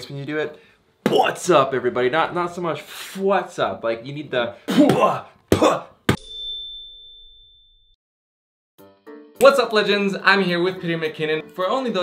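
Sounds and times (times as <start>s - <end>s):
sharp bell-like ding: 6.1s - 8.0s.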